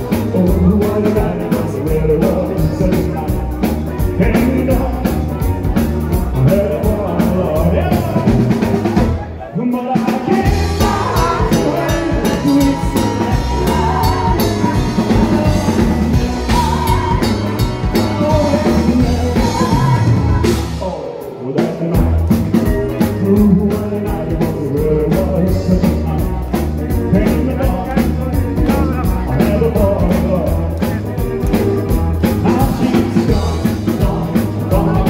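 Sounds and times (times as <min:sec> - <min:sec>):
drum kit: 0:00.0 - 0:35.0
electric guitar: 0:00.0 - 0:35.0
rock and roll band playing: 0:00.0 - 0:35.0.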